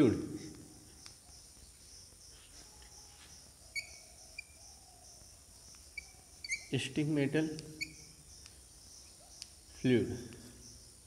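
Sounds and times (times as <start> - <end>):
steady high hiss: 0.0 - 11.0
chalk squeaking on blackboard: 5.9 - 6.8, 7.8 - 8.1.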